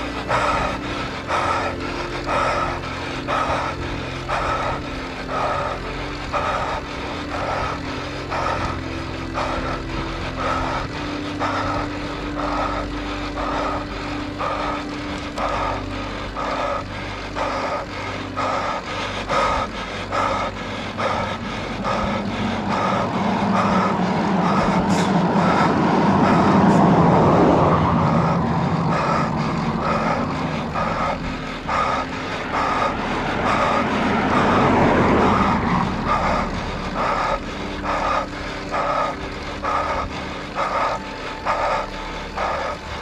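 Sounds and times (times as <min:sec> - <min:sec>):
cyclist breathing hard: 0:00.0 - 0:43.0
tyres humming on road: 0:00.0 - 0:43.0.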